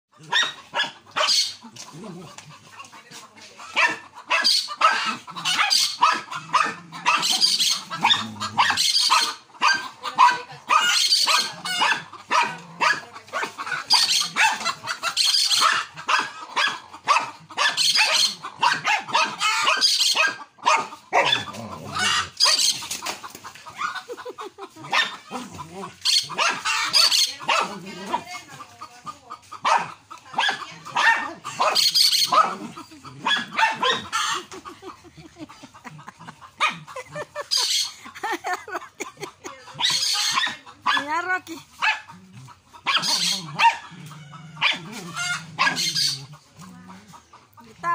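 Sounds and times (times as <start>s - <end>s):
small dogs barking rapidly: 0.1s - 47.9s.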